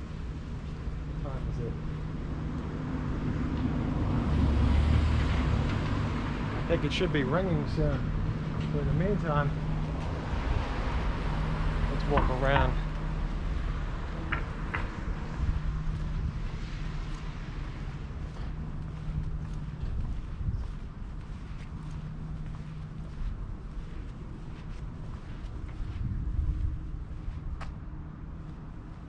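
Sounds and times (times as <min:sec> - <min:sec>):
faint footsteps: 0:00.0 - 0:03.9, 0:07.9 - 0:29.0
low hum and rumble: 0:00.0 - 0:29.0.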